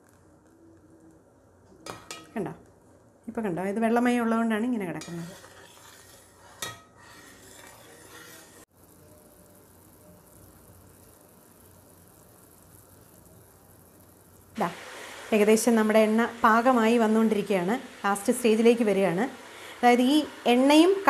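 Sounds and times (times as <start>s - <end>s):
oil bubbling and sizzling: 0.0s - 3.1s, 4.5s - 21.0s
metal ladle stirring: 5.0s - 8.7s.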